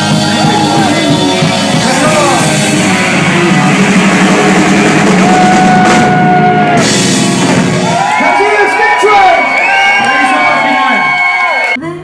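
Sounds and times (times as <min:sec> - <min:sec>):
rock band playing: 0:00.0 - 0:11.8.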